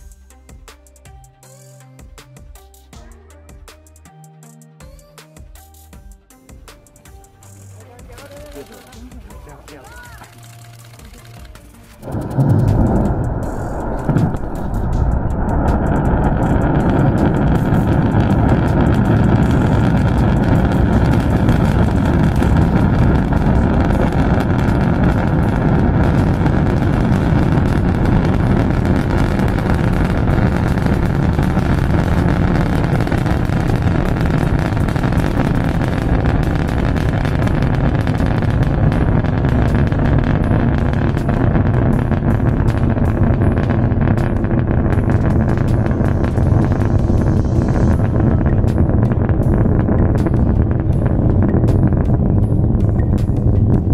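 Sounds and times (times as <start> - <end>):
rocket engines rumbling: 12.0 - 53.9.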